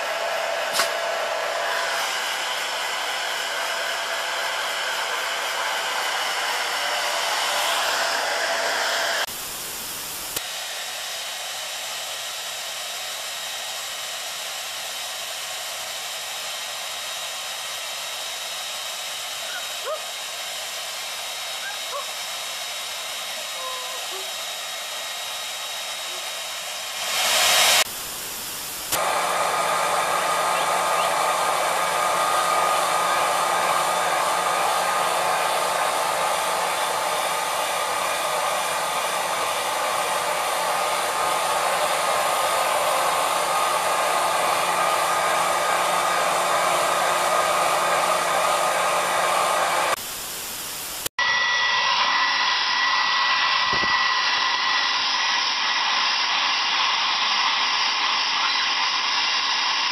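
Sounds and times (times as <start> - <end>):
hair dryer blowing with whine: 0.0 - 59.9.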